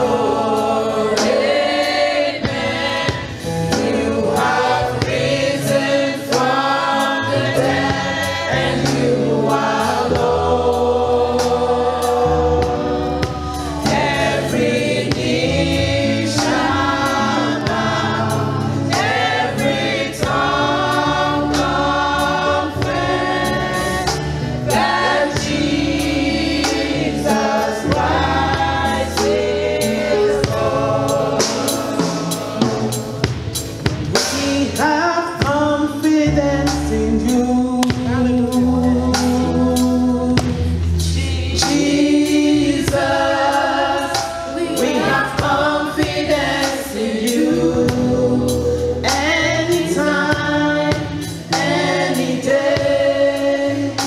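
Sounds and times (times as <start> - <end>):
band with bass and beat: 0.0 - 54.0.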